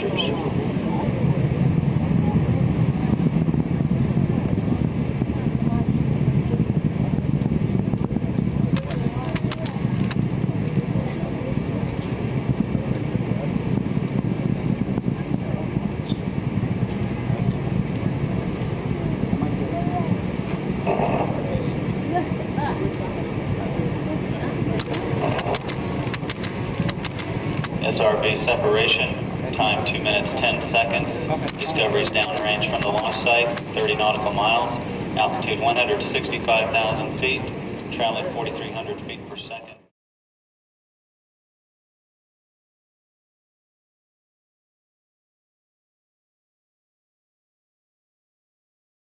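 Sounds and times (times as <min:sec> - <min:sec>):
deep rocket rumble: 0:00.0 - 0:39.9
sharp clicks: 0:08.8 - 0:10.2, 0:24.8 - 0:27.8, 0:31.4 - 0:33.7.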